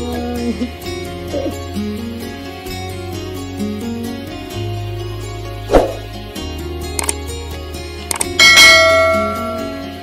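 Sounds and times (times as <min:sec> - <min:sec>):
quick clicks: 0:07.0 - 0:07.2, 0:08.1 - 0:08.4
notification bell ding: 0:08.4 - 0:09.9.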